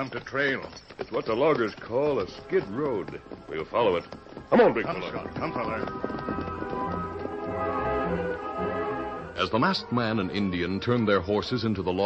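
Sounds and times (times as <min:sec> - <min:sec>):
orchestral strings sustained notes: 0:04.6 - 0:11.6.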